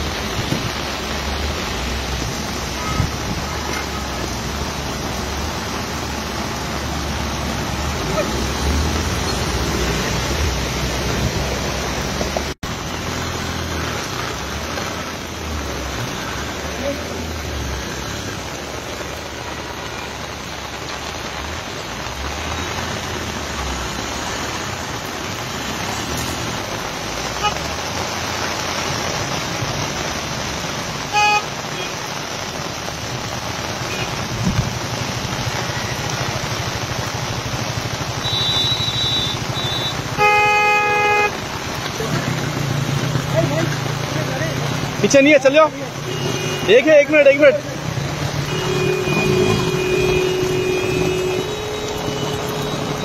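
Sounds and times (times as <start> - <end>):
heavy rain pouring: 0.0 - 53.0
vehicle traffic: 0.0 - 53.0
car horns honking: 27.3 - 28.0, 31.1 - 32.1, 38.1 - 41.4, 45.9 - 47.5, 48.2 - 53.0.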